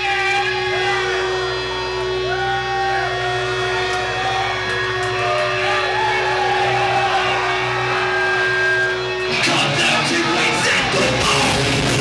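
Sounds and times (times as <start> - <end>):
held guitar amplifier tone: 0.0 - 11.7
audience shouting and whooping: 0.0 - 12.0
low amp hum: 0.0 - 12.0.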